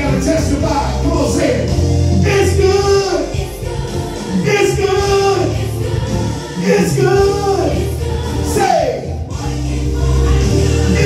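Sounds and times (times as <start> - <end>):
instrumental accompaniment with bass: 0.0 - 11.0
man singing into microphone: 4.4 - 5.6, 6.6 - 7.8.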